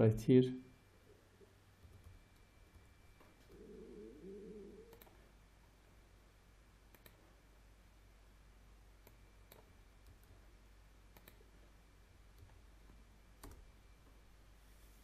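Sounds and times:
faint room hum: 0.0s - 15.0s
computer mouse clicks: 4.9s - 5.2s, 6.9s - 7.2s, 9.0s - 10.4s, 11.1s - 11.5s.

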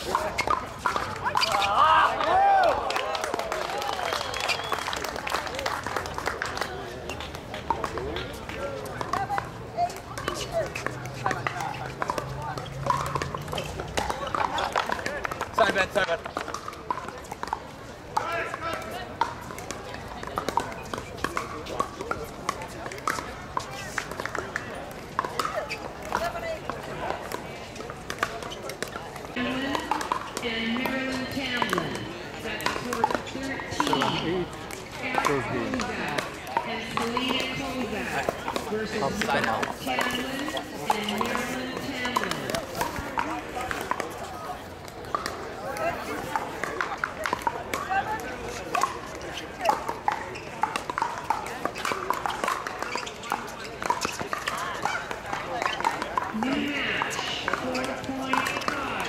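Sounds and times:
paddles striking plastic balls: 0.0s - 2.3s, 5.7s - 59.0s.

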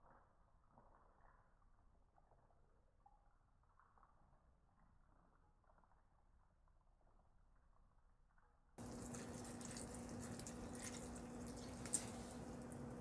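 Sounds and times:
milk pouring into cereal: 0.0s - 13.0s.

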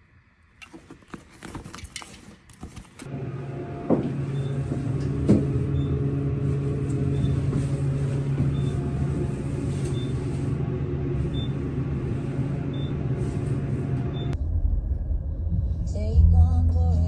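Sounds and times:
elevator hum: 3.0s - 15.3s
car cabin road rumble: 15.7s - 17.0s.

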